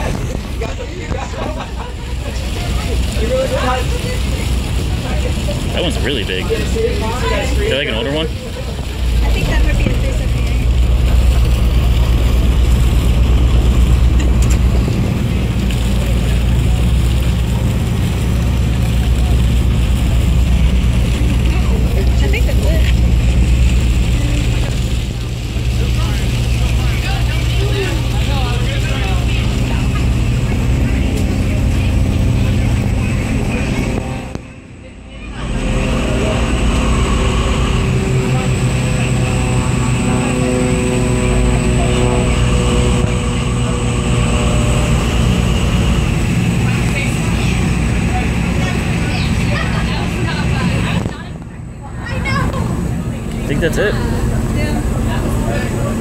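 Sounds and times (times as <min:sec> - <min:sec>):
boat engine droning: 0:00.0 - 0:56.0.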